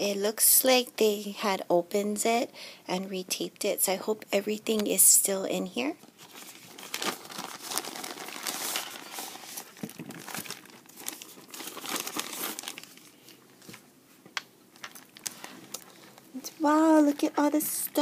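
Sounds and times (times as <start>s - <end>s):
plastic bag crinkling: 6.1s - 13.8s, 14.7s - 16.5s.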